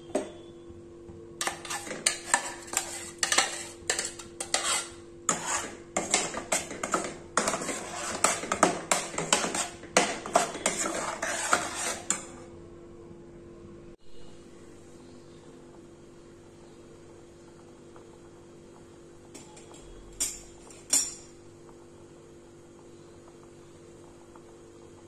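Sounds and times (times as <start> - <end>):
metal spoon scraping metal pot: 1.4 - 12.4.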